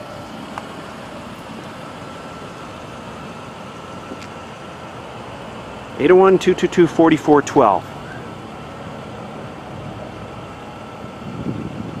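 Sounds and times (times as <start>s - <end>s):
low vehicle-like hum: 0.0s - 12.0s.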